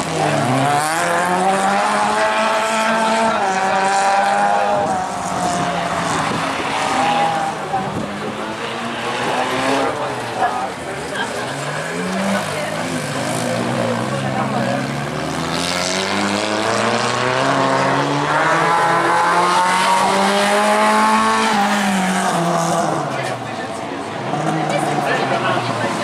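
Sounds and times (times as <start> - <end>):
race car engine revving: 0.0 - 26.0.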